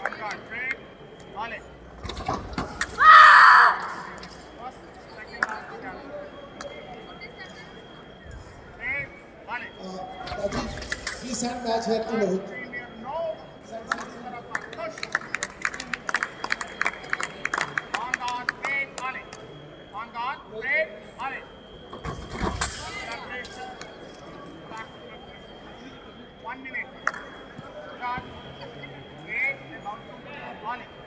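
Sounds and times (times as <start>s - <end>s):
voices: 2.7s - 31.0s.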